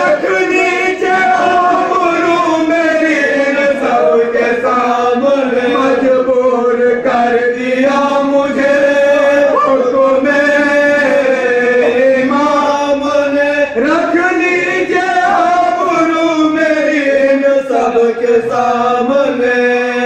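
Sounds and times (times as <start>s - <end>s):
men chanting an elegy: 0.0s - 20.0s.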